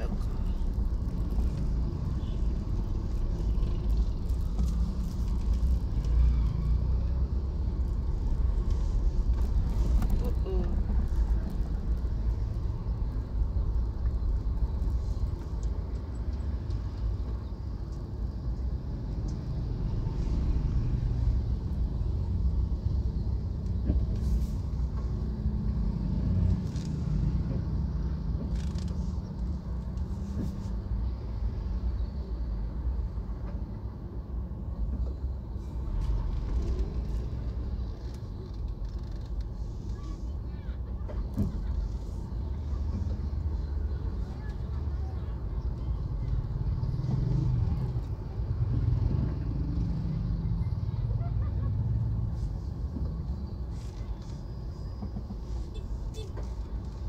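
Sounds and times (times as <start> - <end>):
car engine and tyres rumbling: 0.0 - 57.0.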